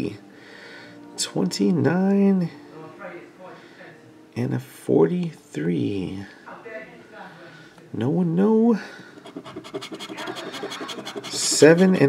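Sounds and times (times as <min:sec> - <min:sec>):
scratch card being scraped: 0:09.2 - 0:12.0.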